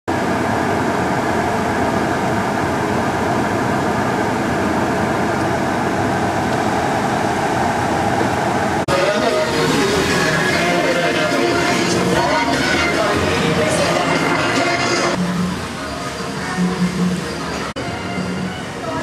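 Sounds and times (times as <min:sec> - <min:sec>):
cars on a wet road: 0:00.1 - 0:19.0
voices: 0:17.3 - 0:19.0.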